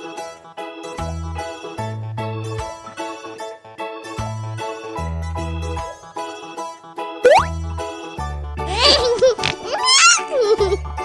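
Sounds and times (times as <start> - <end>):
bouncy children's music: 0.0 - 11.0.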